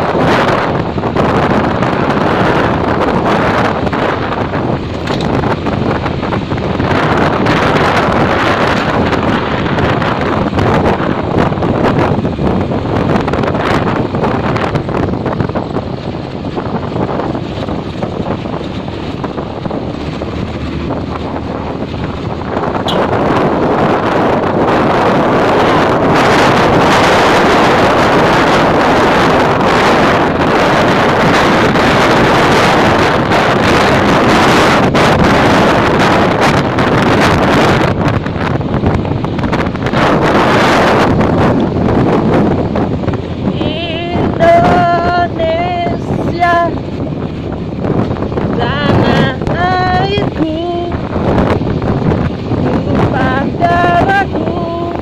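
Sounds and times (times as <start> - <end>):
road noise: 0.0 - 55.0
scooter engine: 0.0 - 55.0
wind rushing over microphone: 0.0 - 55.0.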